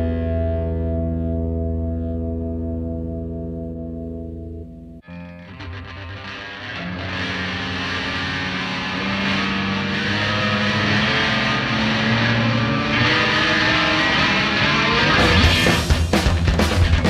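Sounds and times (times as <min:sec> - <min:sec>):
distorted electric guitar rock: 0:00.0 - 0:17.0.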